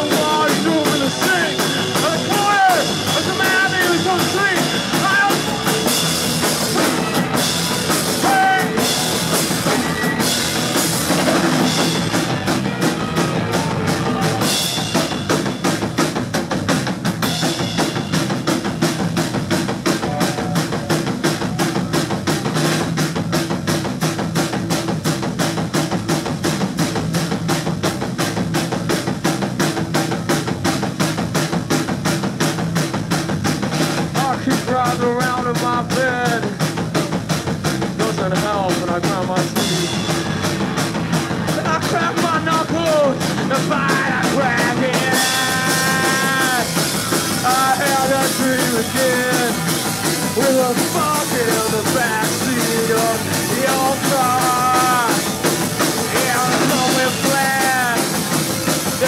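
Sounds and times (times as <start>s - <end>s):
drum kit beat: 0.0s - 59.0s
rock band playing live: 0.0s - 59.0s
wavering high guitar lines: 19.8s - 21.9s.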